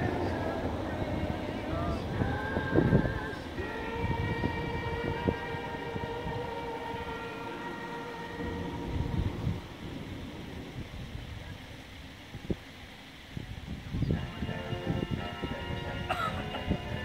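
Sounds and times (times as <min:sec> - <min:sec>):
wind rumble on microphone: 0:00.0 - 0:07.6, 0:08.4 - 0:17.0
horn-like pitched tone: 0:03.6 - 0:09.9, 0:14.1 - 0:17.0.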